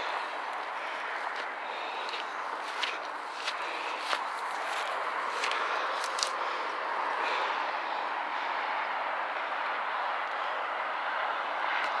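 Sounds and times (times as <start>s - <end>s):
distant vehicle noise: 0.0s - 12.0s.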